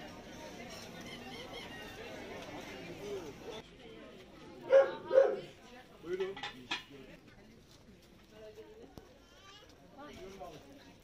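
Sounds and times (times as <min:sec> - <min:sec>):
dog barking: 0:04.7 - 0:05.5.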